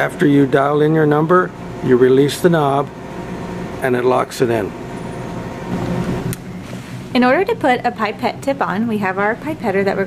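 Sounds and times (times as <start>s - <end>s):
ventilation hum and hiss: 0.0s - 10.0s.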